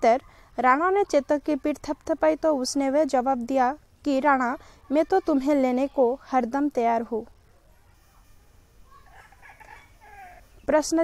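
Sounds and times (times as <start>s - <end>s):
faint animal calls: 7.7s - 10.8s.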